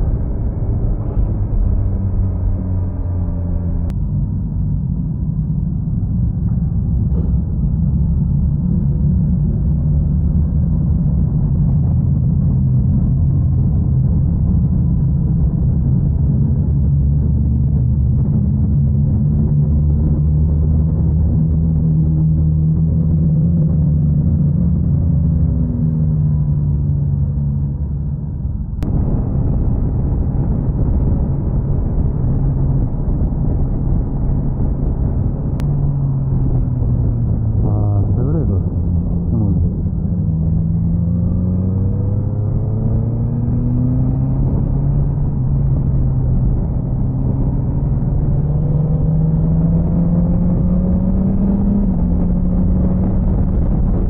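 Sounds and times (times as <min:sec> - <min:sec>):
wind and road noise: 0:00.0 - 0:54.0
motorcycle engine revving: 0:17.4 - 0:54.0.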